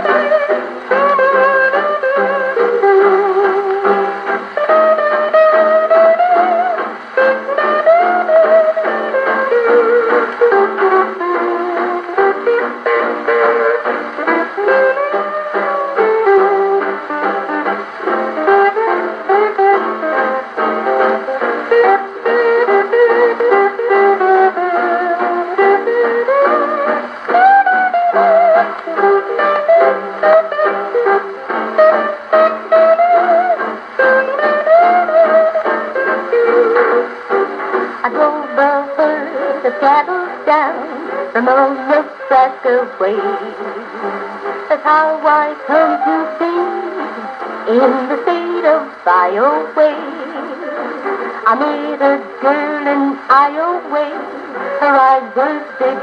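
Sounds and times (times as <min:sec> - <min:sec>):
gramophone record playing: 0:00.0 - 0:56.0
hawaiian band with guitar: 0:00.0 - 0:56.0.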